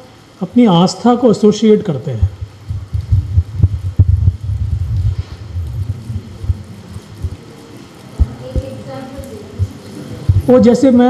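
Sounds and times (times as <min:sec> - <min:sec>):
handheld microphone handling thumps: 0:02.3 - 0:06.6.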